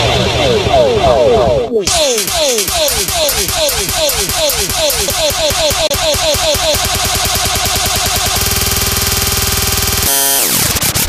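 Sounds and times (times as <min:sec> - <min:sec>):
electronic dance music build-up: 0:00.0 - 0:08.4.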